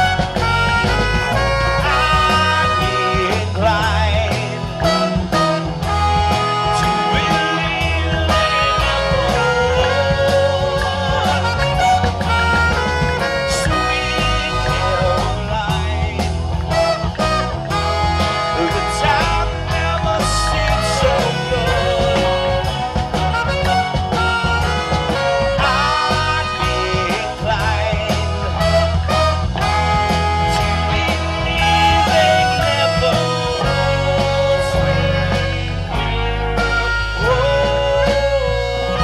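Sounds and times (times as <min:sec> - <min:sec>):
live band playing upbeat song: 0:00.0 - 0:39.0
saxophone: 0:00.0 - 0:39.0
trumpet: 0:00.0 - 0:39.0.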